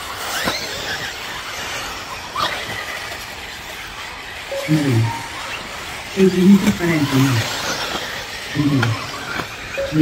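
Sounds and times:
radio-controlled buggies racing: 0:00.0 - 0:10.0
man speaking: 0:04.5 - 0:05.4, 0:06.1 - 0:07.6, 0:08.5 - 0:09.2, 0:09.8 - 0:10.0.

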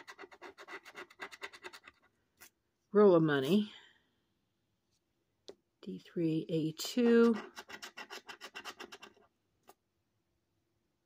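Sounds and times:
coin scratching lottery ticket: 0:00.0 - 0:02.0, 0:07.2 - 0:09.2.

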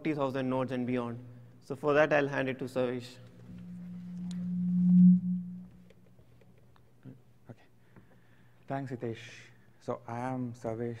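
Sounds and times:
low hum from pa system: 0:00.3 - 0:06.5.

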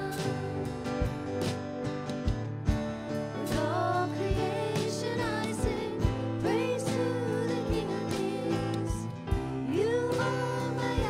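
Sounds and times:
person singing: 0:00.0 - 0:01.1, 0:03.4 - 0:11.0
worship band playing slow song: 0:00.0 - 0:11.0.

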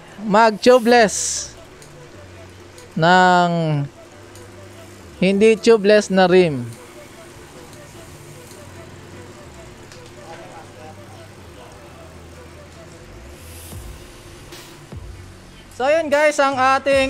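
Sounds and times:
faint music: 0:00.0 - 0:17.0.

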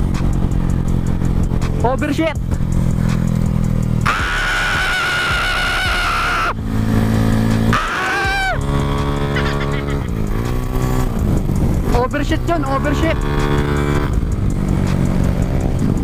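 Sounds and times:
scooter engine running: 0:00.0 - 0:16.0
high-pitched scream: 0:04.0 - 0:06.6, 0:07.7 - 0:08.7
falling cry: 0:04.1 - 0:06.6, 0:07.7 - 0:08.7.

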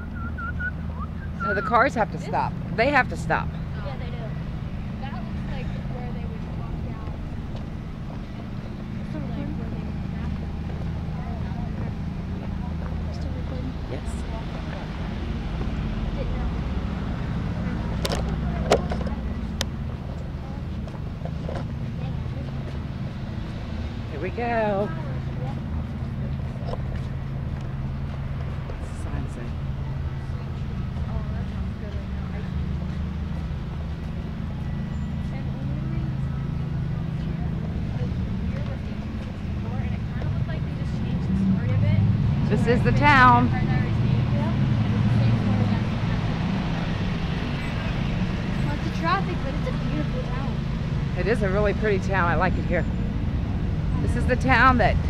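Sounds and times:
road traffic rumble: 0:00.0 - 0:55.0.

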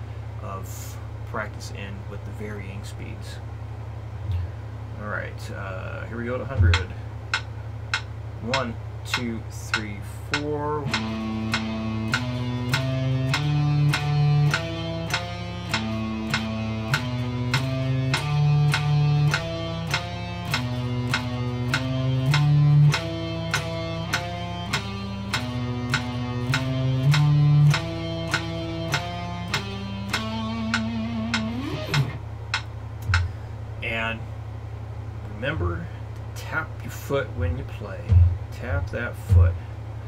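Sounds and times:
electric guitar notes: 0:06.5 - 0:33.6
metronome clicking: 0:06.7 - 0:33.3.

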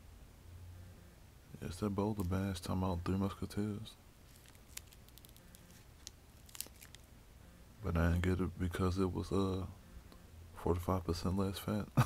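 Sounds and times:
foil wrapper crinkling: 0:04.3 - 0:07.1.

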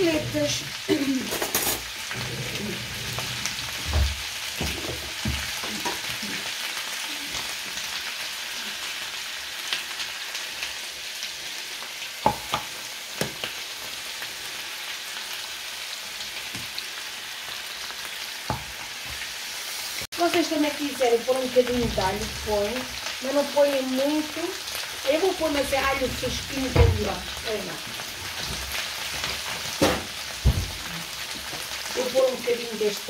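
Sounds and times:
meat sizzling in oil: 0:00.0 - 0:33.0
potatoes and bacon frying: 0:00.0 - 0:33.0.

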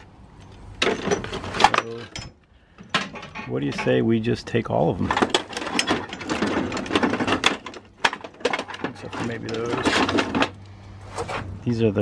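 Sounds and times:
metal connectors rattling and clicking: 0:00.4 - 0:04.2, 0:04.9 - 0:11.5.

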